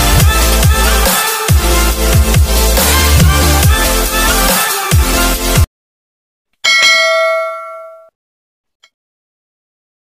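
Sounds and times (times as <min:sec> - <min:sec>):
bell chime notification: 0:06.7 - 0:08.1.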